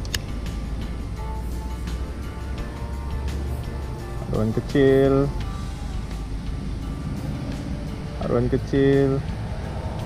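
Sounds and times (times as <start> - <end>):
steady low rumble: 0.0 - 10.0
voice holding steady pitch: 2.4 - 6.1.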